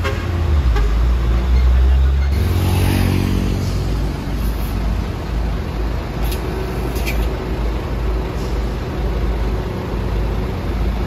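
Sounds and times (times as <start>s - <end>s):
diesel truck engine rumble: 0.0s - 11.0s
road noise: 0.0s - 11.0s.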